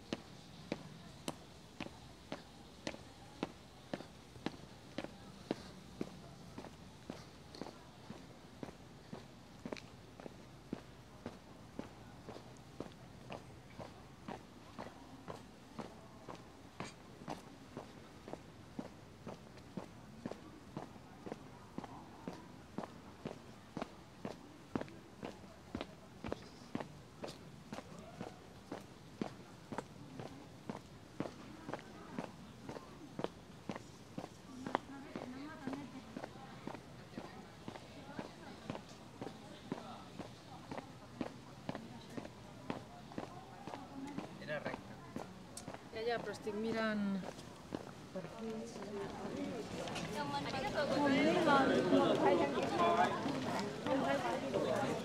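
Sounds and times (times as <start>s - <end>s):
footsteps on paving: 0.0s - 55.0s.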